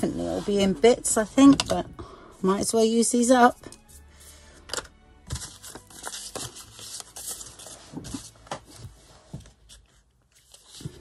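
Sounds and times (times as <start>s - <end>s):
paper rustling and tapping: 5.3s - 9.8s.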